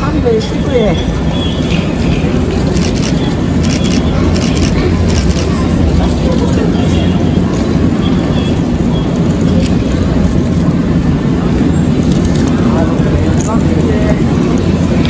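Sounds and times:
electric train approaching: 0:00.0 - 0:15.0.

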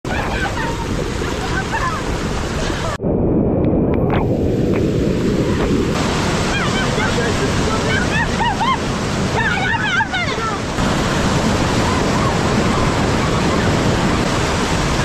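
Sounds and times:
wind buffeting microphone: 0:00.1 - 0:15.0.

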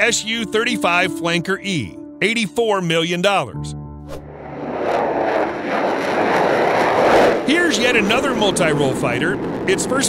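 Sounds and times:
jet engines at takeoff: 0:04.2 - 0:10.0.

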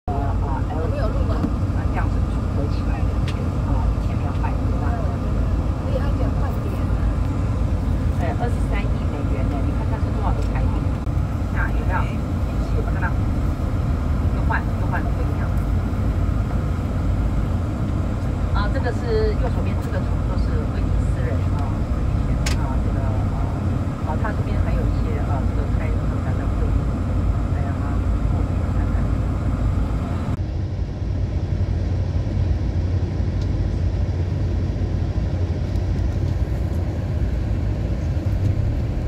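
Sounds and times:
bus engine and tyres rumbling: 0:00.0 - 0:39.0
faint voices talking: 0:00.1 - 0:13.4.

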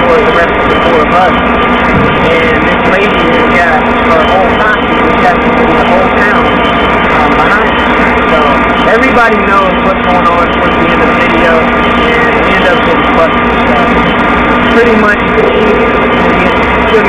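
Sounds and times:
loud mechanical drone: 0:00.0 - 0:17.0
man talking: 0:02.2 - 0:06.6.

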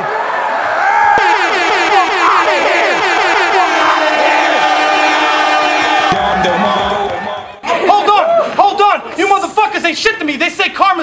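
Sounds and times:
crowd shouting and cheering: 0:00.0 - 0:09.5
steady tone: 0:01.2 - 0:07.7.

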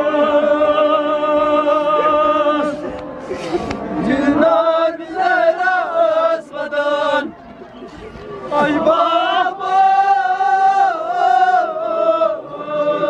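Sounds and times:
men chanting a lament: 0:00.0 - 0:07.4, 0:08.0 - 0:13.0.

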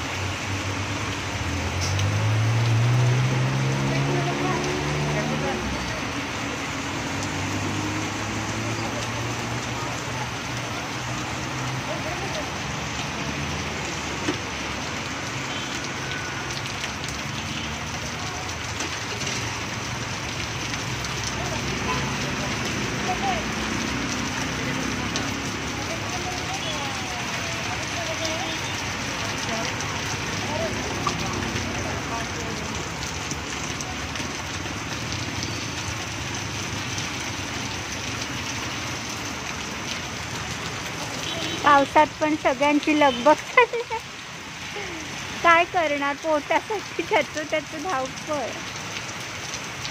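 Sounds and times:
heavy rain pattering: 0:00.0 - 0:49.9.

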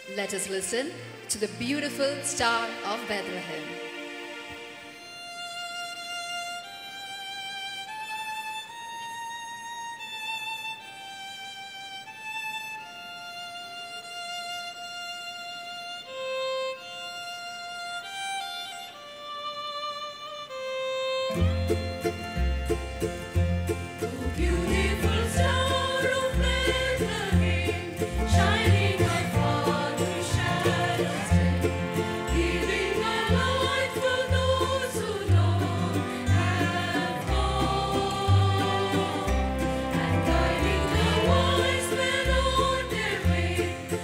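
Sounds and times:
bass line: 0:21.5 - 0:43.7.

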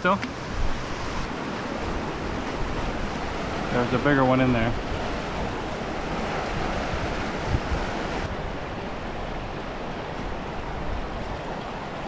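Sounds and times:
mountain stream rushing: 0:00.0 - 0:12.0.

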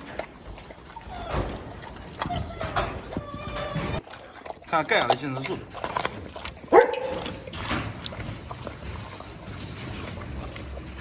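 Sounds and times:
dog lapping and chewing food: 0:00.0 - 0:11.0
dog barking sharply: 0:06.7 - 0:07.2.

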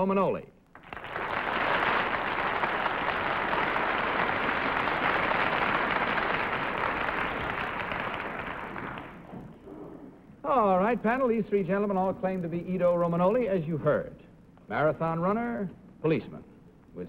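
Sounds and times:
audience applauding: 0:00.8 - 0:09.5.

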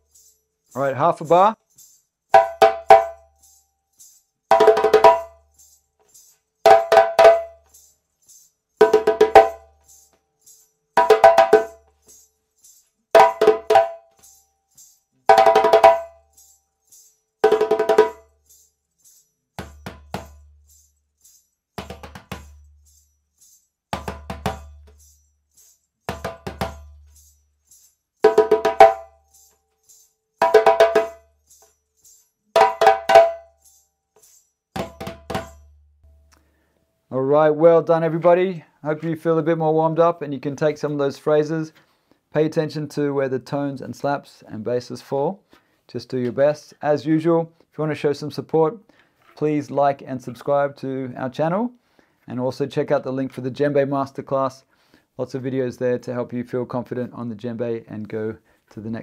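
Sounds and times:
djembe played by hand: 0:02.4 - 0:03.2, 0:04.5 - 0:05.4, 0:06.7 - 0:07.6, 0:08.8 - 0:09.7, 0:11.0 - 0:11.8, 0:13.2 - 0:14.1, 0:15.3 - 0:16.2, 0:17.4 - 0:18.2, 0:19.6 - 0:20.4, 0:21.8 - 0:22.6, 0:23.9 - 0:25.0, 0:26.1 - 0:27.1, 0:28.3 - 0:29.2, 0:30.4 - 0:31.2, 0:32.6 - 0:33.5, 0:34.8 - 0:35.8.

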